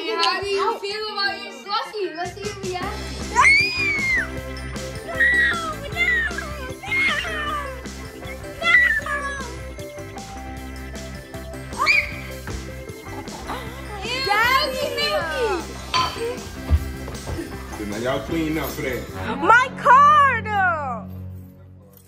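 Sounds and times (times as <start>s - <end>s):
background music with steady beat: 0.0s - 22.0s
children squealing and laughing: 3.2s - 10.2s, 11.5s - 15.5s.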